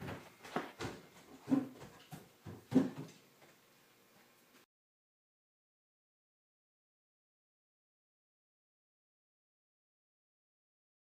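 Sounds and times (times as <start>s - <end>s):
short knocks and bumps: 0.0s - 3.2s.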